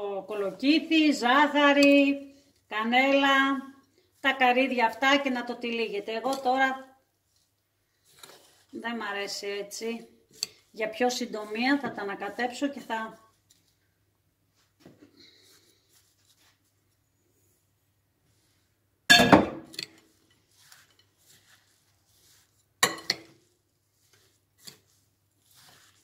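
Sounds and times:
metal spoon clinking glass bowl: 22.8s - 23.3s.

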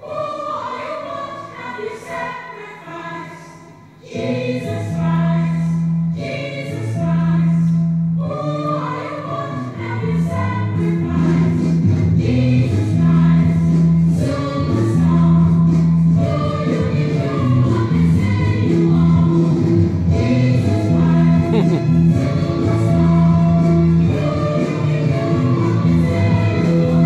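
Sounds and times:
choir singing: 0.0s - 15.6s, 16.2s - 27.0s
instrumental backing music: 3.4s - 27.0s.

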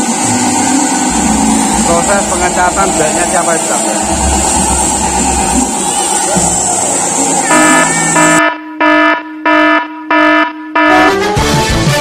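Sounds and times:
horn held note and blasts: 7.4s - 11.3s.

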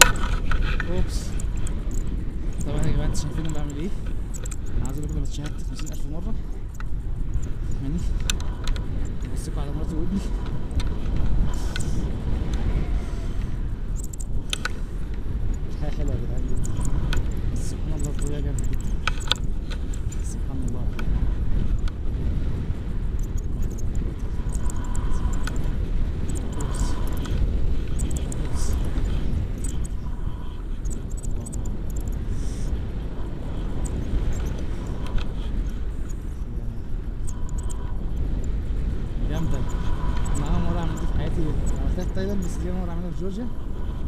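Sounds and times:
wind rushing over microphone: 0.0s - 44.0s.

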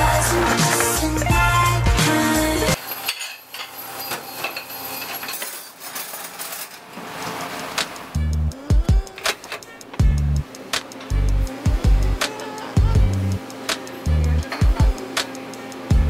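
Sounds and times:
music with heavy bass beat: 0.0s - 2.8s, 8.1s - 16.0s
dish sprayer hissing: 0.0s - 5.6s
dishes and cutlery clinking: 2.8s - 7.8s, 14.4s - 14.9s.

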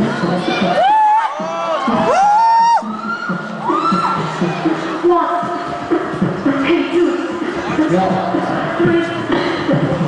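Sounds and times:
beatboxing swooping vocal note: 0.0s - 10.0s.

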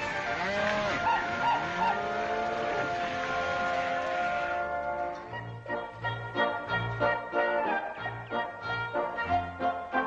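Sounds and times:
orchestral music with held notes: 0.0s - 10.0s
cattle bawling and lowing: 0.3s - 4.6s.

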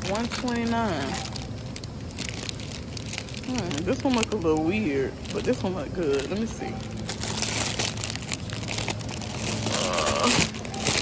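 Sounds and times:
low steady hum: 0.0s - 11.0s
plastic wrapping crinkling: 0.0s - 11.0s.

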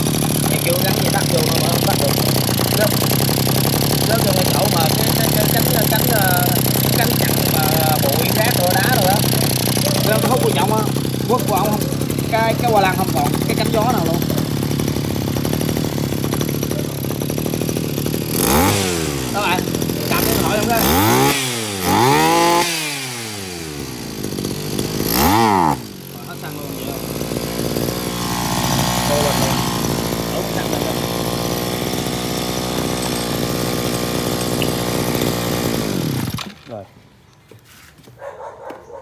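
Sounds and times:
brush-cutter engine revving and idling: 0.0s - 36.9s.

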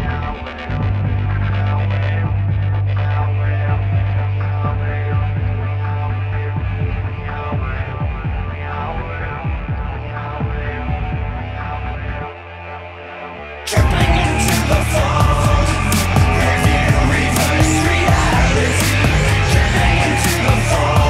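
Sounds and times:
low synth drone: 0.0s - 21.0s.

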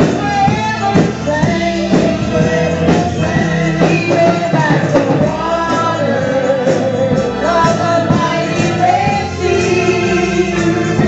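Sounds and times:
organ accompaniment: 0.0s - 11.0s
woman singing gospel: 0.0s - 11.0s.

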